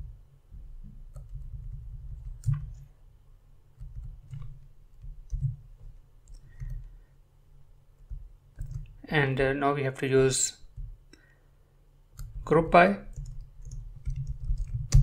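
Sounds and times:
low steady background rumble: 0.0 - 15.0
keyboard and mouse clicks: 3.8 - 6.9, 8.0 - 9.0, 13.1 - 15.0.

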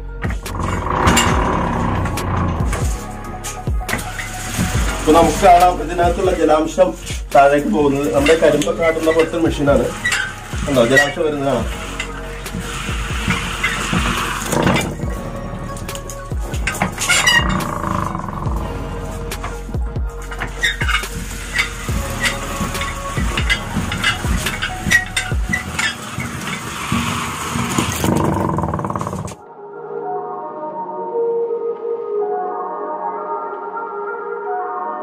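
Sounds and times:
soft ambient music: 0.0 - 35.0
roller mill gears knocking and creaking: 0.1 - 3.1, 7.4 - 29.4.

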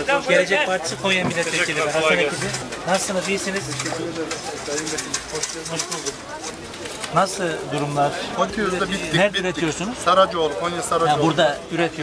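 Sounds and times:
market bustle: 0.0 - 12.0
people talking indistinctly: 0.0 - 12.0.

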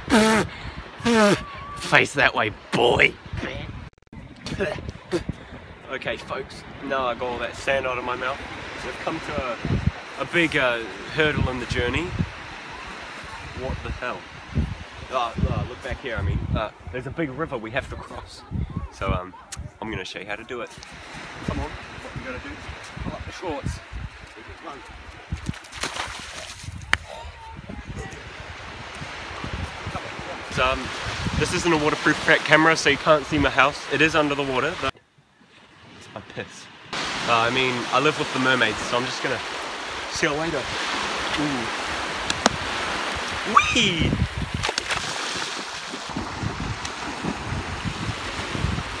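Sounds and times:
wind buffeting microphone: 2.5 - 7.6, 8.3 - 19.8, 20.8 - 32.2, 39.8 - 49.0
small waves washing on sand: 5.7 - 16.1, 20.7 - 27.0, 27.9 - 34.9, 35.6 - 49.0
bare feet splashing through water: 25.2 - 27.0, 44.3 - 47.6.

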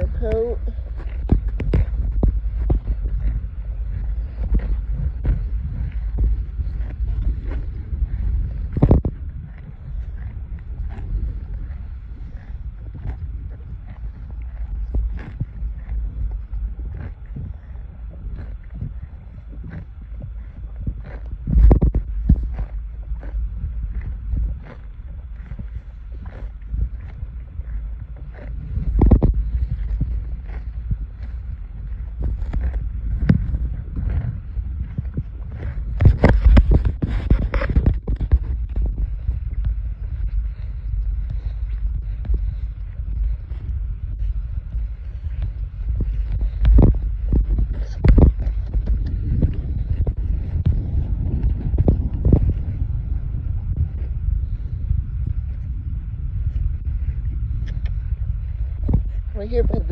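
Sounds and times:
wind rumbling on microphone: 0.0 - 59.9.

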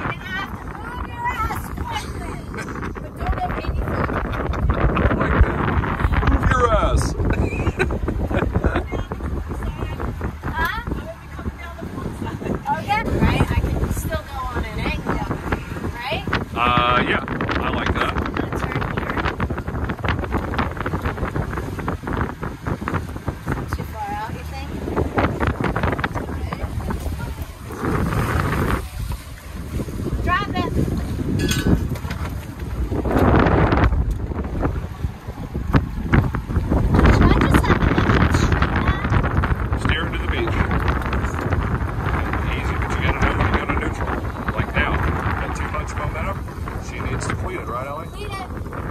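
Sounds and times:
wind buffeting microphone: 0.0 - 48.9
person laughing: 7.3 - 9.0.

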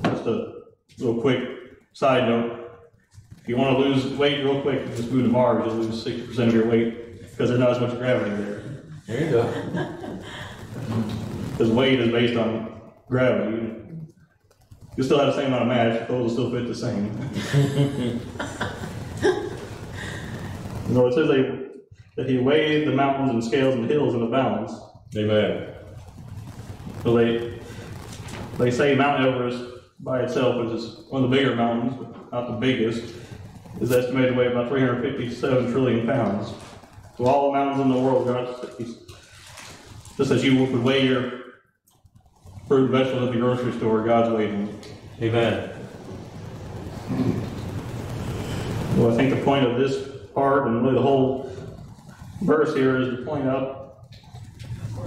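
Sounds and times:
low rumbling noise: 0.0 - 41.4, 42.0 - 55.0
man chuckling: 8.6 - 11.1, 17.2 - 19.7.

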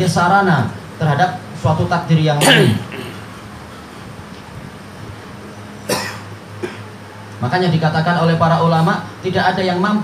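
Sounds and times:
faint steady hum: 0.0 - 10.0
man coughing: 2.4 - 3.3, 5.8 - 6.9.

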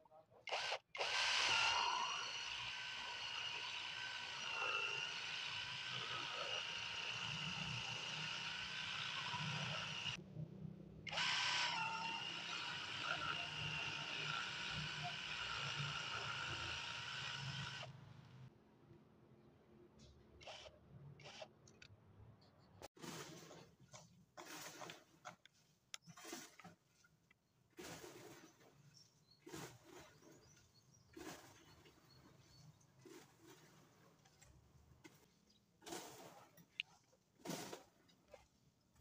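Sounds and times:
impact driver motor whine: 0.5 - 10.2.

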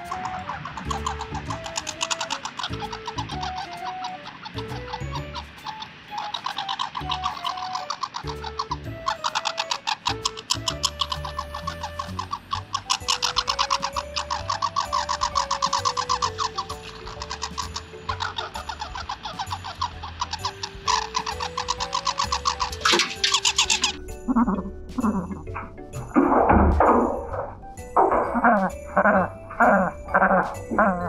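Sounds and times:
squirrel gnawing and cracking nuts: 0.0 - 25.8
light background music: 0.0 - 31.0.

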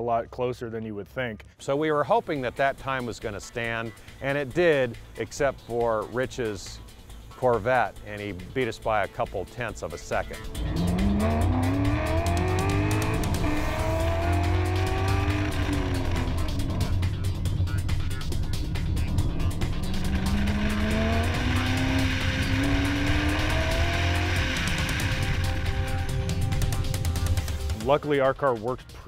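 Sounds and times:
car engine accelerating: 10.3 - 27.8.

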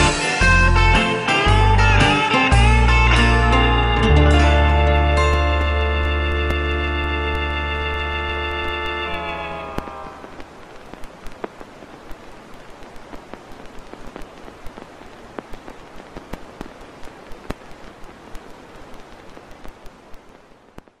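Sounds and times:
rain falling: 0.0 - 21.0.

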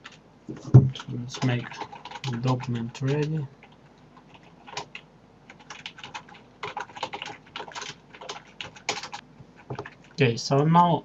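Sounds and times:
typing on computer keyboard: 0.0 - 0.2, 0.9 - 10.0.

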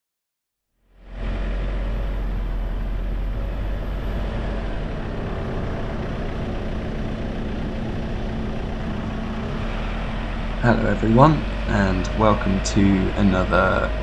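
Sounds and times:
car engine and road rumble: 0.9 - 14.0.

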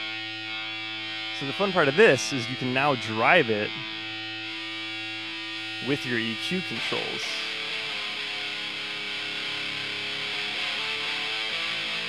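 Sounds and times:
distorted bass guitar note: 0.0 - 7.2.

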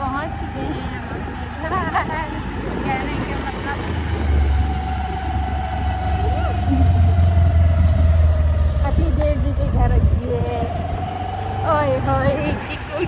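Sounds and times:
steady whine: 0.0 - 13.0
vehicle engine rumble: 0.0 - 13.0
wind on microphone: 0.0 - 13.0.

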